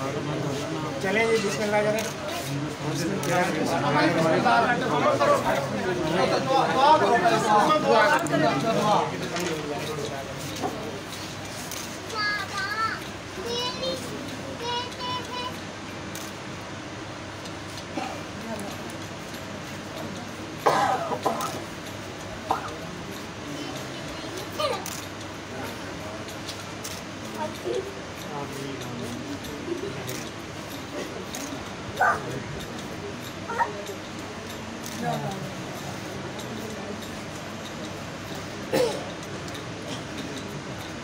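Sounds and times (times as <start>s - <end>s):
crowded room noise: 0.0s - 41.0s
faint background murmur: 0.0s - 41.0s
young child's high voice: 12.1s - 15.6s, 33.5s - 33.8s.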